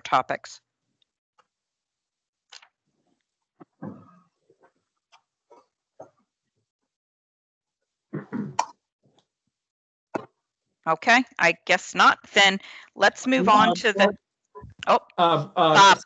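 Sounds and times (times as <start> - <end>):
mouth sounds: 8.2 - 8.7, 13.2 - 16.0
short burst of voice: 13.3 - 14.2, 15.2 - 16.0.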